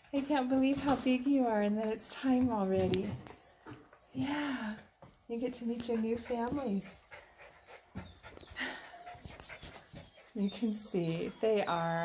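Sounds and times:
puppies panting: 0:00.0 - 0:12.0
puppy whimpers: 0:06.6 - 0:12.0.

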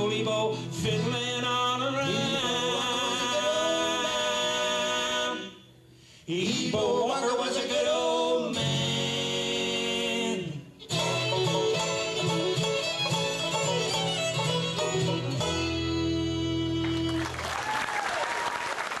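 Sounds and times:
bluegrass band playing: 0:00.0 - 0:05.3, 0:06.6 - 0:17.4
vocal harmony: 0:00.0 - 0:12.6
audience applauding: 0:16.8 - 0:19.0.

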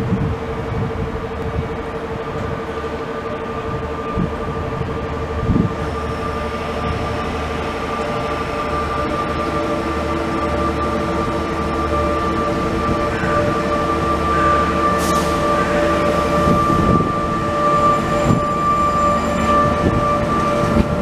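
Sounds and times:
train whine arriving: 0:00.0 - 0:21.0.

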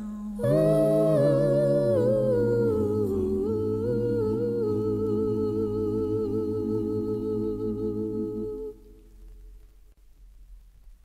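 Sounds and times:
person humming wordlessly: 0:00.0 - 0:08.8
low drone: 0:00.0 - 0:09.0.

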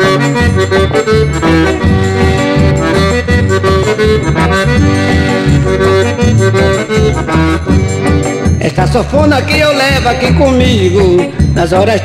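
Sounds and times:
piano accordion melody: 0:00.0 - 0:12.0.

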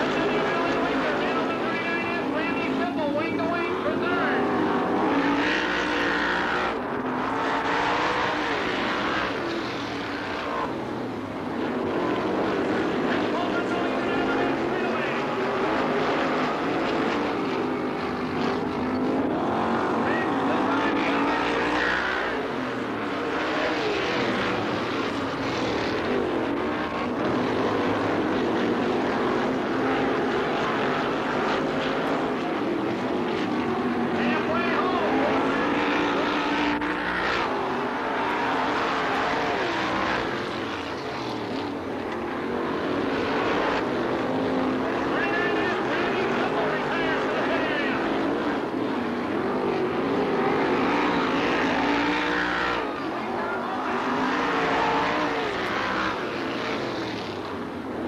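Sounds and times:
race car engines running hard: 0:00.0 - 0:58.0.

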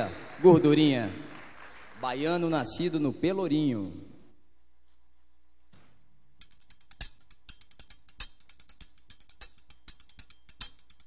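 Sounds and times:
faint steady hum: 0:00.0 - 0:11.0
hand percussion clicks: 0:06.4 - 0:11.0.

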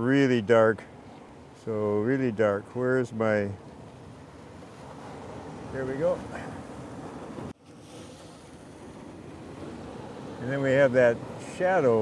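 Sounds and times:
ocean surf: 0:00.0 - 0:12.0.

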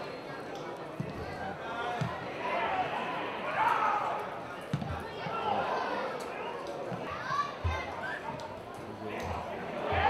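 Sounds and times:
crowd shouting: 0:09.6 - 0:10.0.

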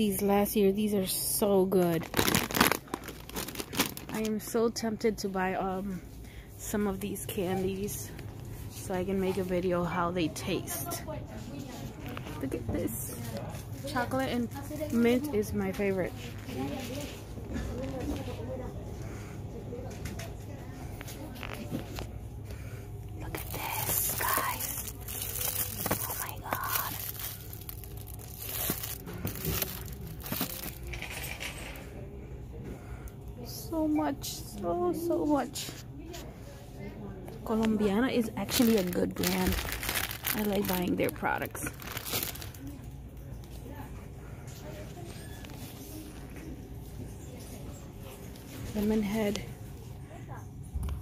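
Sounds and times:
low steady hum: 0:00.0 - 0:51.0
candy packaging rustling: 0:01.1 - 0:04.6, 0:20.9 - 0:31.7, 0:37.5 - 0:43.6
plastic crinkling: 0:01.8 - 0:04.5, 0:23.2 - 0:31.3, 0:38.2 - 0:42.8
faint small noises: 0:10.5 - 0:51.0.

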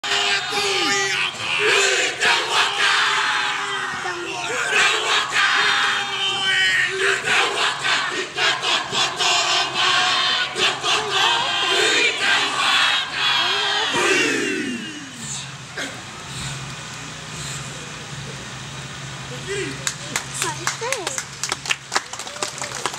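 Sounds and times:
men chanting in unison: 0:00.0 - 0:15.2.

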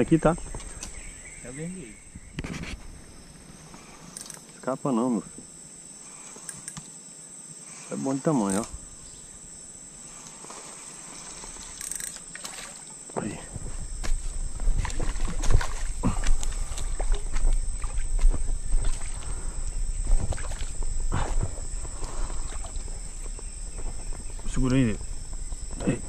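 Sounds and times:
crickets chirring: 0:00.0 - 0:26.0.

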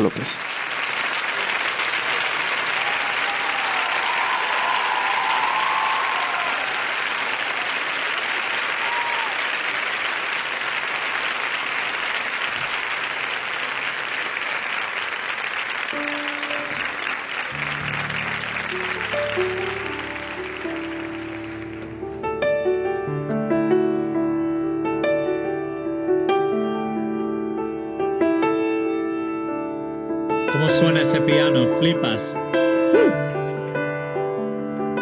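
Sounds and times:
audience applauding: 0:00.0 - 0:22.3, 0:30.6 - 0:32.3
grand piano playing: 0:14.4 - 0:35.0.

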